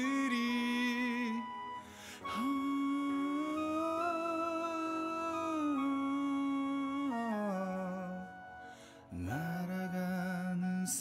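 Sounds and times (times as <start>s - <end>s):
man singing a slow ballad: 0.0s - 11.0s.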